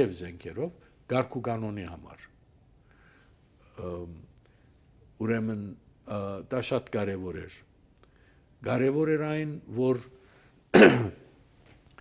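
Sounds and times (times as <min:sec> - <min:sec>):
man talking: 0:00.0 - 0:02.3, 0:03.7 - 0:04.3, 0:05.2 - 0:07.7, 0:08.6 - 0:10.2
man clearing his throat: 0:10.7 - 0:11.3.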